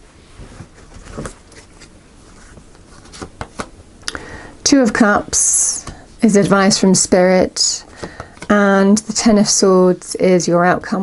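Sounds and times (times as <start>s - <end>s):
cards clicking and rustling: 2.5s - 3.7s, 7.9s - 8.5s.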